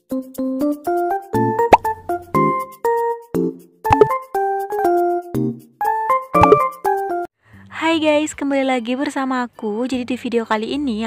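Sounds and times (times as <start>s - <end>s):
rising bloop pop effect: 3.9s - 4.2s, 6.4s - 6.7s.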